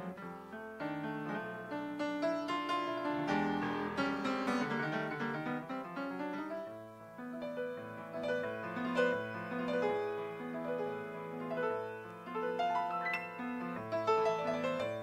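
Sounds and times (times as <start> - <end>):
jazz piano playing: 0.0 - 15.0.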